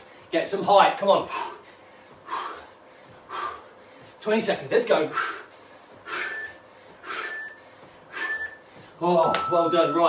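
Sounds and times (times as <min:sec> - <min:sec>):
man breathing hard: 0:00.0 - 0:00.4, 0:01.1 - 0:09.0.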